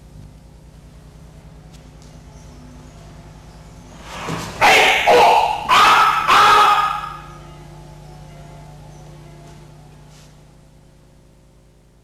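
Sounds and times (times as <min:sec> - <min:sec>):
person shouting: 0:04.7 - 0:07.2.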